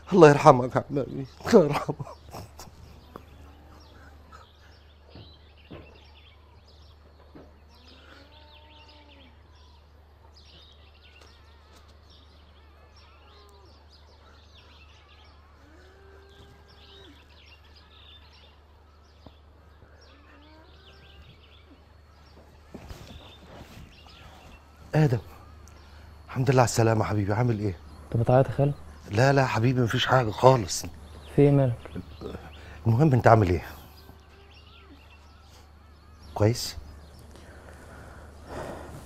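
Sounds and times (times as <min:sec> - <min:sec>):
birds chirping and calling: 0:00.0 - 0:39.0
steady low hum: 0:15.4 - 0:39.0.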